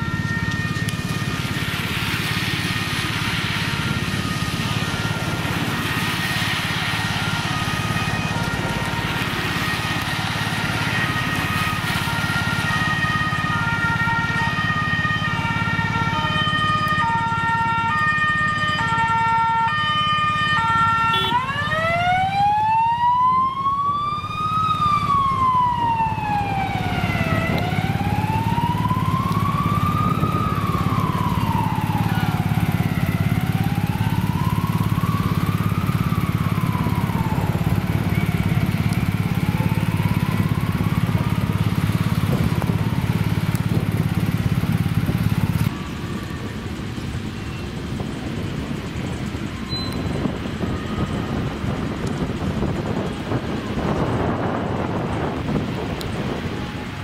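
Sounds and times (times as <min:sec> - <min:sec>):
ambulance siren: 0:00.0 - 0:57.0.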